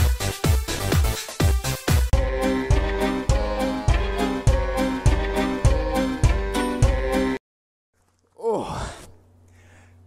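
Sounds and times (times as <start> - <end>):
man sighing: 8.3 - 10.0.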